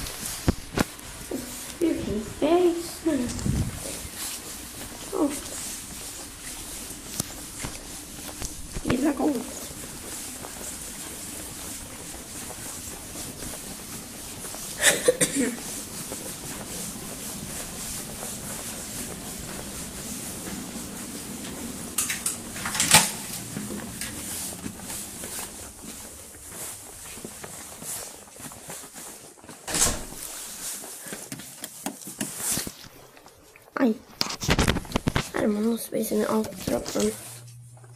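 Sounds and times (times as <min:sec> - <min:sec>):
steady background hiss: 0:00.0 - 0:34.2
footsteps on tiled floor: 0:00.0 - 0:37.9.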